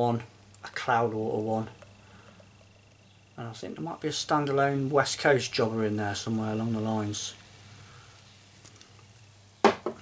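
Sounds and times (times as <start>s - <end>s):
man speaking: 0.0s - 1.8s, 3.4s - 7.4s.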